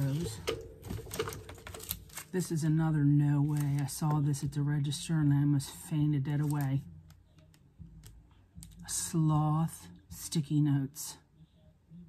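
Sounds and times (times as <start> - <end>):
cellophane crinkling: 0.0 - 2.6, 6.4 - 6.8.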